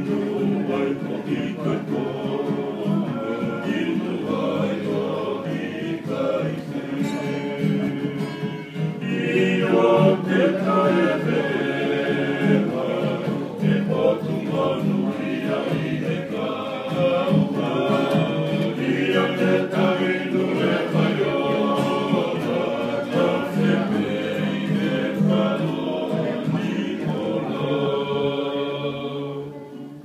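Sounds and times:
men singing in harmony: 0.0s - 29.8s
strummed acoustic guitars: 0.0s - 30.0s.

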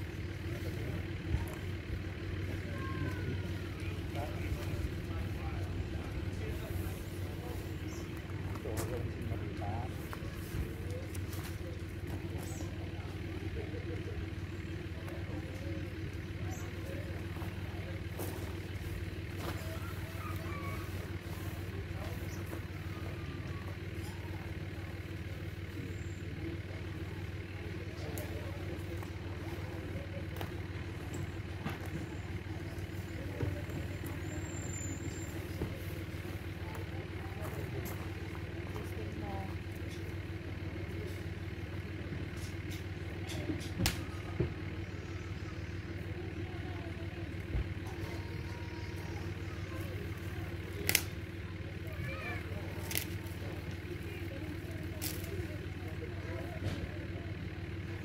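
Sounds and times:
low engine hum: 0.0s - 58.0s.

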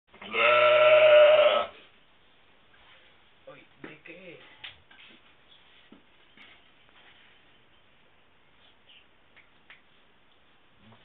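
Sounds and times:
sheep bleating: 0.2s - 1.8s.

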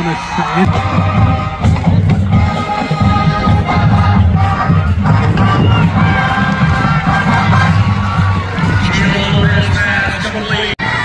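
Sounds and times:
music with steady low beat: 0.7s - 9.8s.

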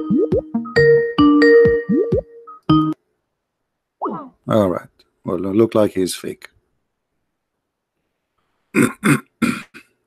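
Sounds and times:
man clearing his throat: 8.8s - 10.0s.

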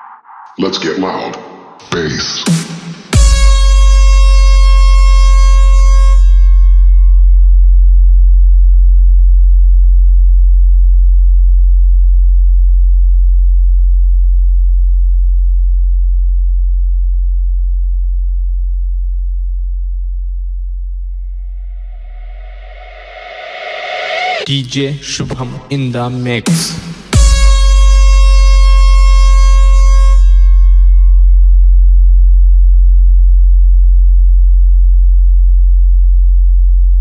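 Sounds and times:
deep synthesised bass tone: 3.1s - 24.5s, 26.8s - 37.0s
noisy swell: 21.7s - 24.5s.

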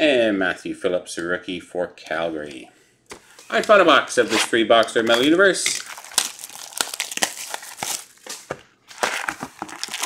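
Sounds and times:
plastic shrink wrap tearing: 3.6s - 10.0s.

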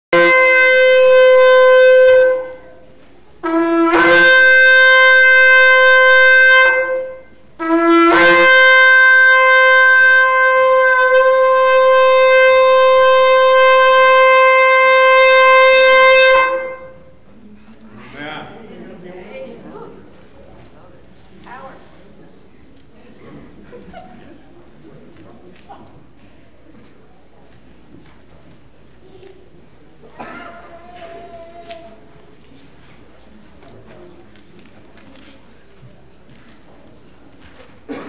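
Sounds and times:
loud horn blasts: 0.1s - 17.2s.

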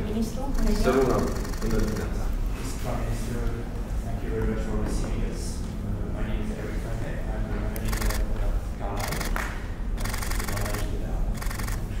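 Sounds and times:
camera shutters clicking: 7.8s - 8.3s, 9.0s - 9.4s, 10.0s - 11.8s.

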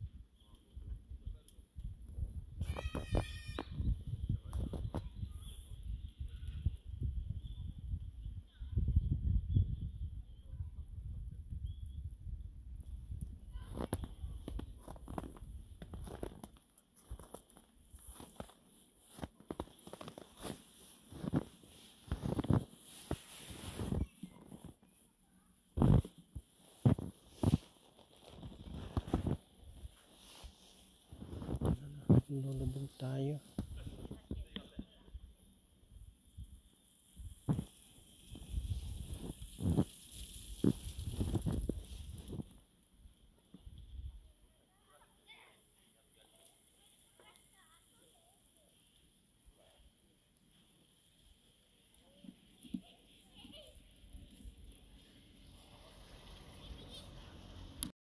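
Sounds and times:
footsteps in snow: 13.7s - 24.9s, 25.8s - 34.2s, 37.2s - 42.5s.

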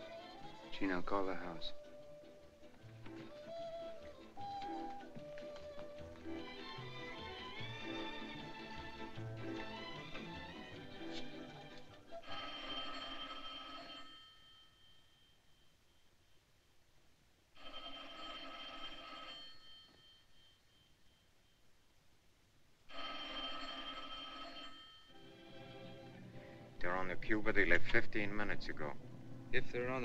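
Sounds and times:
telephone bell ringing: 12.1s - 15.8s, 17.6s - 21.3s, 22.9s - 25.7s.

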